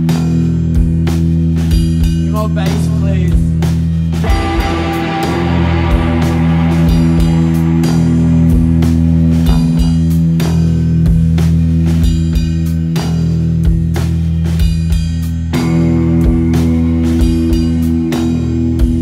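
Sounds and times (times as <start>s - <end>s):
electric guitar chords: 0.0s - 14.6s, 15.3s - 19.0s
drum kit beat: 0.0s - 19.0s.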